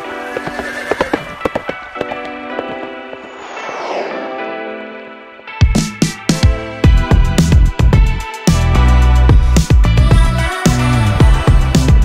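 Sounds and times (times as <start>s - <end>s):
horse whinny: 0.0s - 2.2s
hoof clops: 0.0s - 3.0s
music playing: 0.0s - 12.0s.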